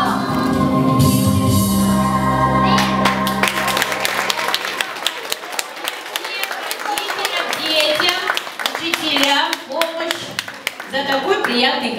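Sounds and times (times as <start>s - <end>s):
hand claps: 2.8s - 11.6s.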